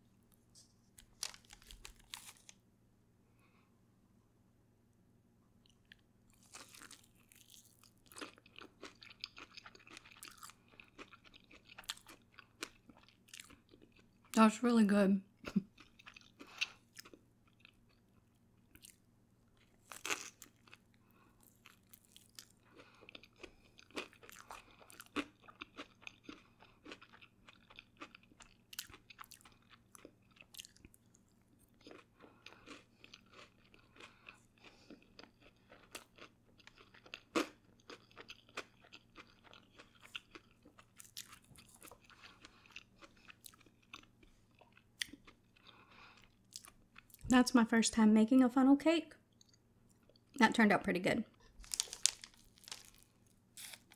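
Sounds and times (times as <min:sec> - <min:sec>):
person chewing food: 0:05.6 - 0:14.4, 0:15.5 - 0:47.2, 0:49.3 - 0:50.4, 0:51.3 - 0:53.9.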